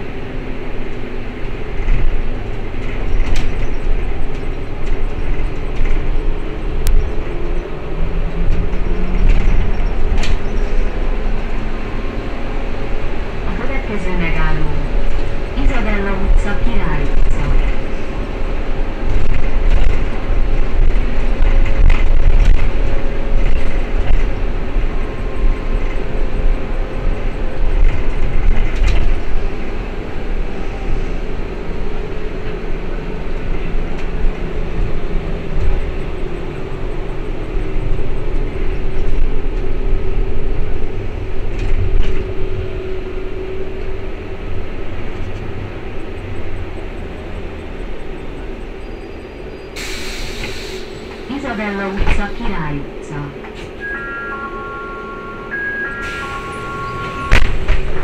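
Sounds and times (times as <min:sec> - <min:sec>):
trolleybus ride rumble: 0:00.0 - 0:58.0
humming tone: 0:53.8 - 0:57.9.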